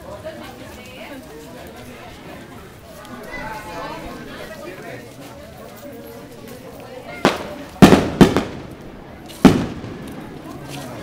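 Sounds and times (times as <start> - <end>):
crowd talking: 0.0 - 11.0
firework bangs with echo: 7.2 - 10.5.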